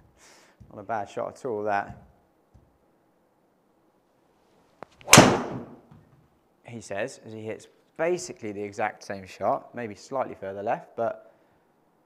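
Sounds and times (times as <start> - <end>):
golf ball crack off driver: 5.0 - 5.8.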